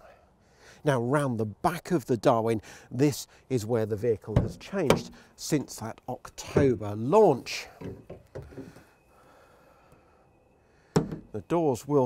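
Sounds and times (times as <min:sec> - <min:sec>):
van door opening: 0:04.3 - 0:05.8.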